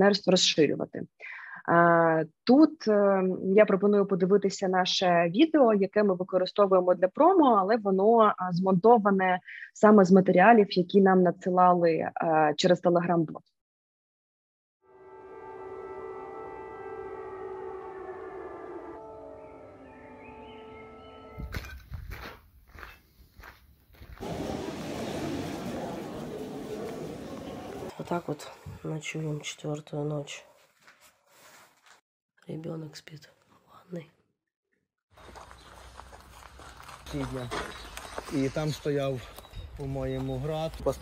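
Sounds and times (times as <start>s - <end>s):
air-raid siren: 14.8s - 21.6s
footsteps on gravel: 21.4s - 27.8s, 35.2s - 41.0s.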